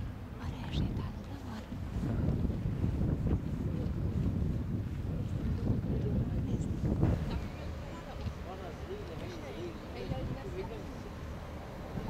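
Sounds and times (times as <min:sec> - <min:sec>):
wind buffeting the microphone: 0:00.0 - 0:12.0.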